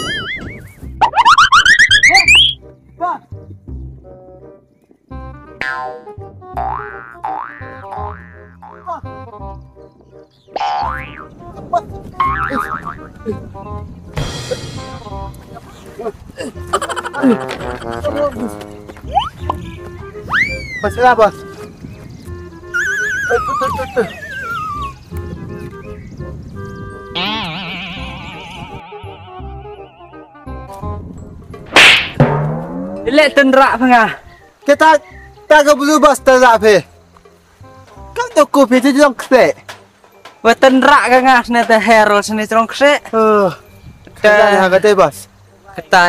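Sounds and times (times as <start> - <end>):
wobbling warble: 0.0 - 2.6
comic background music: 0.0 - 21.7, 22.4 - 25.1, 27.0 - 34.0
springy boing rising in pitch: 12.2 - 13.1, 27.2 - 29.1, 31.8 - 33.3
slap to the face: 31.7 - 32.6.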